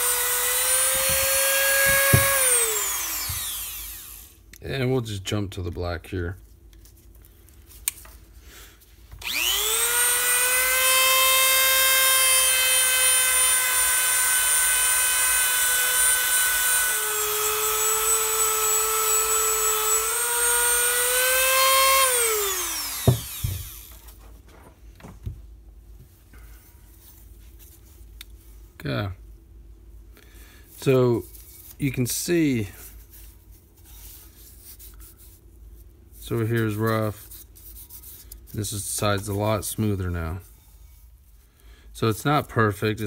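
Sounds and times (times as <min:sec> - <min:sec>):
rotary tool buffing metal: 0:00.0 - 0:04.4, 0:09.2 - 0:24.0.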